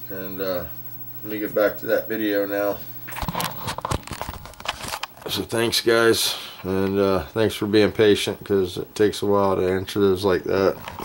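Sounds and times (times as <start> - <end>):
camera handling noise: 3.1 - 5.2.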